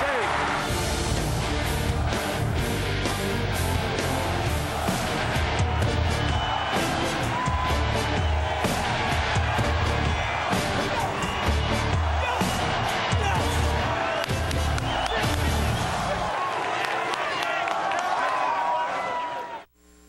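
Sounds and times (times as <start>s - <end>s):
stadium crowd cheering: 0.0s - 19.7s
rock music with heavy beat: 0.6s - 16.0s.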